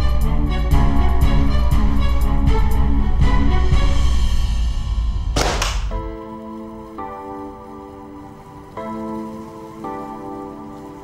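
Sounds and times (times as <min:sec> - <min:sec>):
dramatic score with deep bass: 0:00.0 - 0:07.0.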